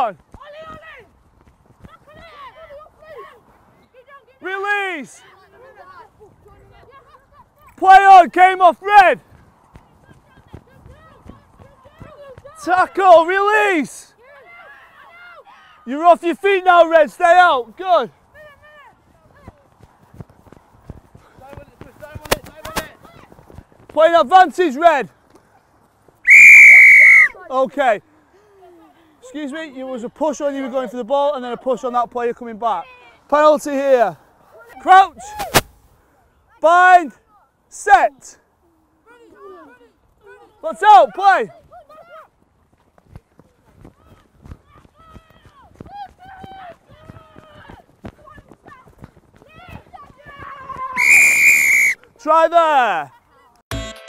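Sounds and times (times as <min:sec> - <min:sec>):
running footsteps on grass: 0:00.0 - 0:04.4, 0:05.0 - 0:15.2, 0:15.8 - 0:26.3, 0:40.0 - 0:53.6
distant shouts of young players: 0:00.3 - 0:01.2, 0:01.8 - 0:09.2, 0:10.2 - 0:16.0, 0:26.2 - 0:27.5, 0:38.5 - 0:42.4, 0:43.4 - 0:53.6
players shouting: 0:44.1 - 0:48.8.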